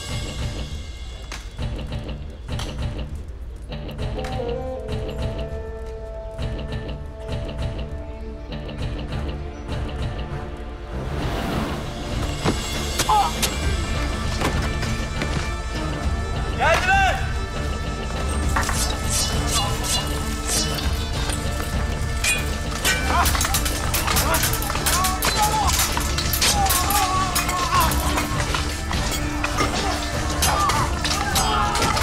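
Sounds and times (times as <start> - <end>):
dramatic background music: 0.0 - 32.0
men shouting and crying out: 12.9 - 13.8, 16.4 - 17.5, 19.1 - 32.0
swords clashing: 18.5 - 21.6, 22.2 - 32.0.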